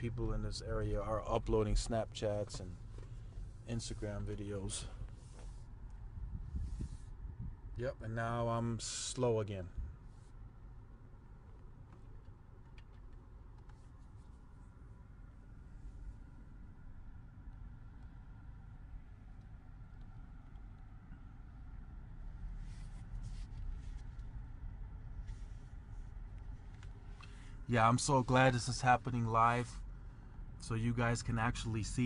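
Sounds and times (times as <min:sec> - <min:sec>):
soft rustles or clicks: 0:01.6 - 0:07.2, 0:11.4 - 0:14.9, 0:22.4 - 0:24.5, 0:25.1 - 0:28.9.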